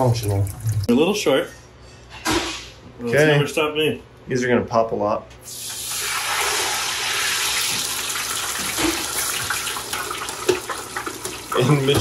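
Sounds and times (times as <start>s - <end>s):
potato strips sizzling in hot oil: 5.5s - 11.9s.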